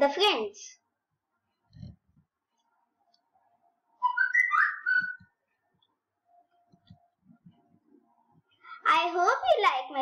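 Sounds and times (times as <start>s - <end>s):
whistle-like sliding notes: 4.0s - 5.4s.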